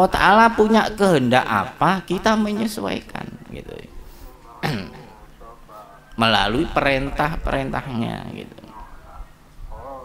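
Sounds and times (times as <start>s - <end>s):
faint murmuring: 2.1s - 10.0s
man clearing his throat: 4.6s - 5.2s.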